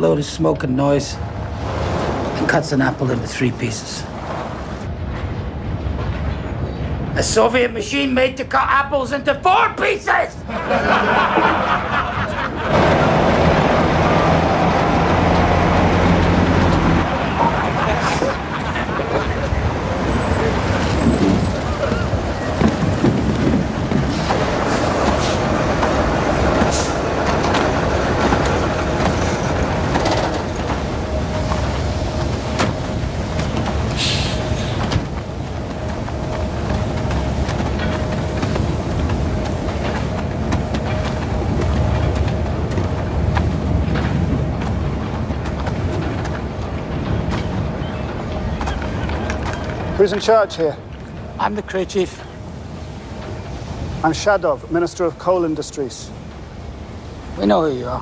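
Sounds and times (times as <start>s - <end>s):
steady machine whine: 12.6s - 54.4s
low engine hum: 12.7s - 50.0s.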